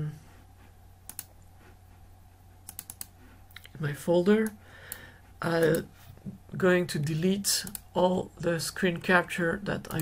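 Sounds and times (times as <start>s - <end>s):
faint steady hum: 0.0s - 10.0s
computer mouse clicks: 1.0s - 1.5s, 2.6s - 3.8s, 4.4s - 5.9s, 7.6s - 7.9s.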